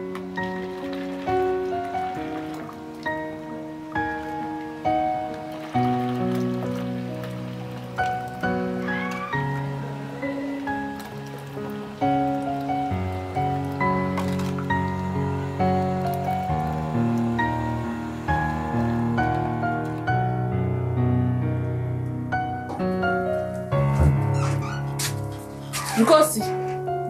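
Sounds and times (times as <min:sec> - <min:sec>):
slow piano music: 0:00.0 - 0:27.0.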